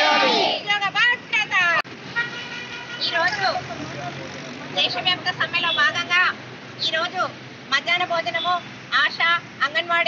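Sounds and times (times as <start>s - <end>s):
protest crowd voices: 0.0s - 0.8s
street traffic noise: 0.0s - 10.0s
vehicle horn sounding: 2.1s - 3.3s.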